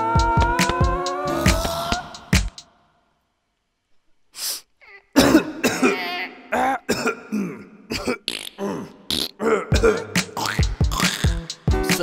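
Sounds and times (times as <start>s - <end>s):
throaty vocal noises: 6.6s - 11.6s
breathy vocal burst: 8.6s - 10.2s.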